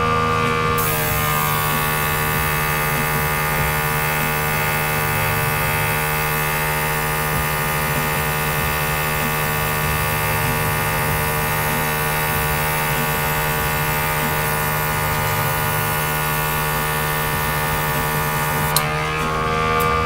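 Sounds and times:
compressor humming: 0:00.0 - 0:20.0
airbrush hiss: 0:00.8 - 0:18.8.

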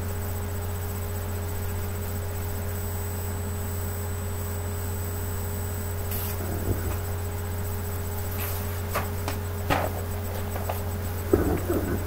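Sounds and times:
faint thin whine: 0:00.0 - 0:12.0
low electrical hum: 0:00.0 - 0:12.0
paper map rustling: 0:08.2 - 0:12.0.

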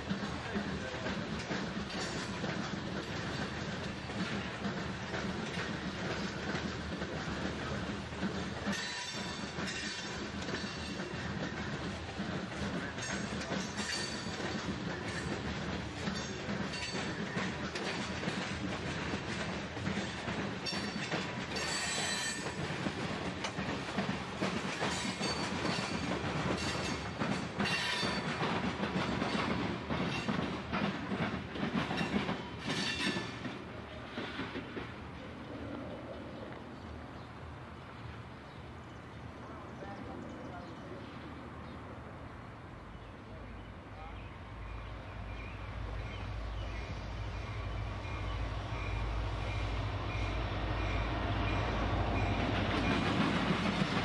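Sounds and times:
wheels clicking over rail joints: 0:00.0 - 0:35.3
train wheels rumbling on rail: 0:00.0 - 0:54.0.

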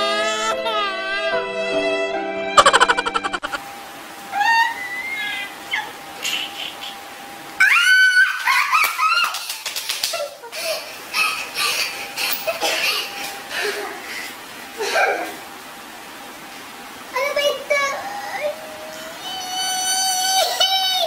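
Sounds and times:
breathy giggling: 0:02.6 - 0:03.6
woman laughing high-pitched: 0:02.6 - 0:03.6.

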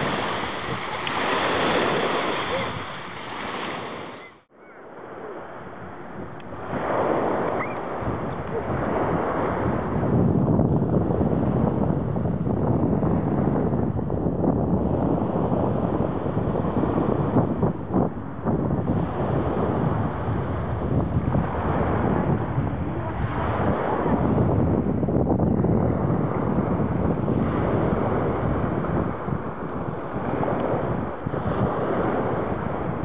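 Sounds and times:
small waves breaking: 0:00.0 - 0:10.1
wind buffeting microphone: 0:00.0 - 0:33.0.

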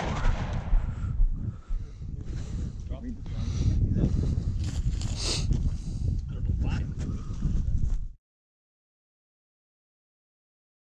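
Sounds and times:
wind buffeting microphone: 0:00.0 - 0:08.2.

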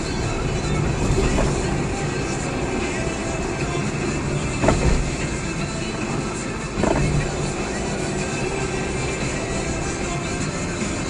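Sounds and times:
car engine and road noise: 0:00.0 - 0:11.0
music from car radio: 0:00.0 - 0:11.0.

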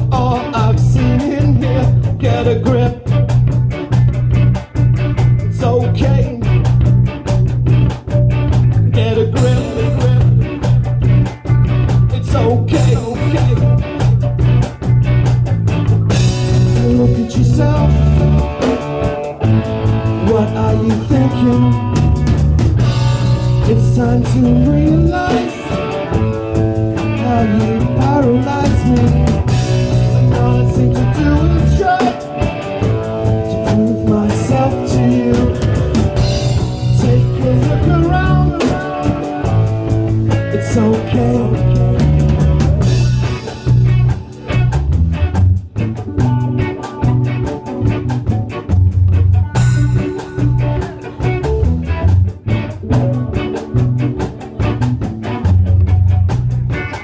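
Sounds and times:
drum kit: 0:00.0 - 0:57.0
electric guitar: 0:00.0 - 0:57.0.

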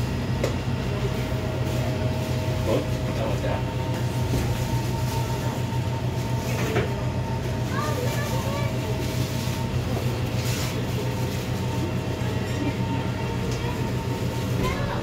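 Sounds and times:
low machine hum: 0:00.0 - 0:15.0
faint chatter of shoppers: 0:00.6 - 0:03.6, 0:04.3 - 0:15.0.

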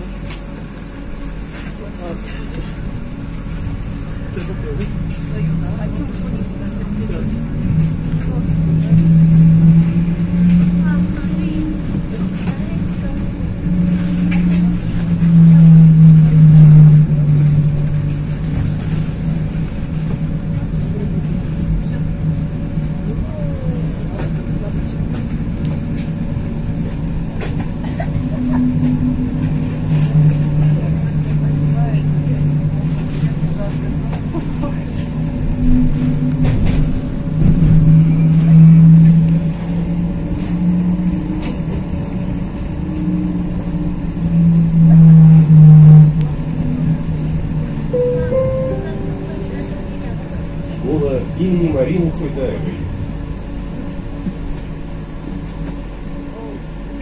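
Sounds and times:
tram interior hum: 0:00.0 - 0:57.0
tram rolling rumble: 0:00.0 - 0:57.0.

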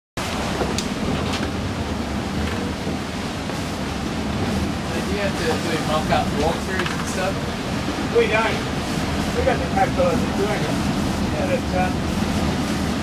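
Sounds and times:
rough sea: 0:00.2 - 0:13.0
wind rushing: 0:00.2 - 0:13.0.

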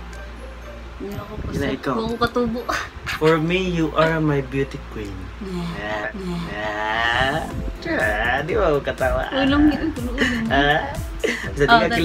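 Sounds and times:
man and woman laughing: 0:03.0 - 0:04.4, 0:09.4 - 0:12.0.

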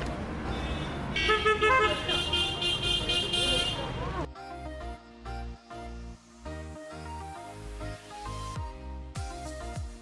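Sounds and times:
traffic rumble: 0:00.0 - 0:04.3
vehicle horn toots: 0:00.5 - 0:04.0.

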